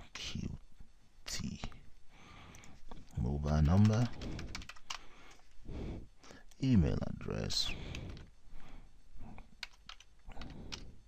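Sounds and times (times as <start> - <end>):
computer keyboard typing: 3.5 - 5.1, 7.8 - 8.3, 9.4 - 11.0.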